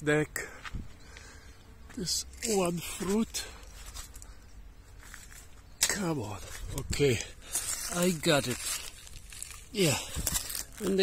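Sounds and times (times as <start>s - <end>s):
leaves rustling: 2.0s - 11.0s.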